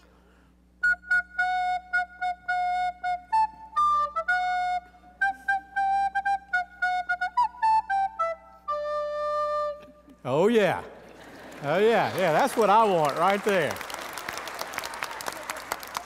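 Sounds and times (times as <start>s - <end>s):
recorder playing a tune: 0.8s - 10.2s.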